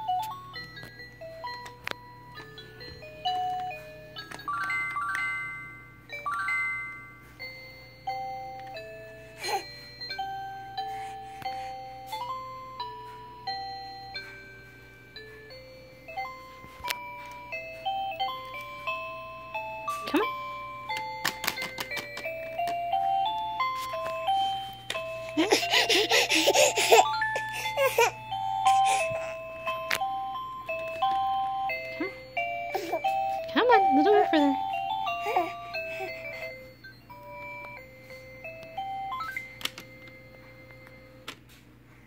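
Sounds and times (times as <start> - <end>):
electronic toy beeping tune: 29.6 - 41.1.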